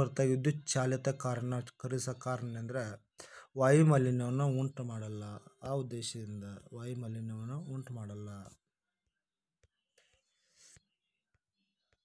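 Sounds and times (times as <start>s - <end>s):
man's voice: 0.0s - 8.6s.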